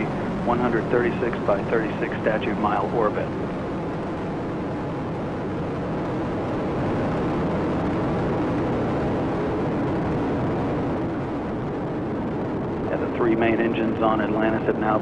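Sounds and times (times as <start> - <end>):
rocket motors rumbling: 0.0 - 15.0.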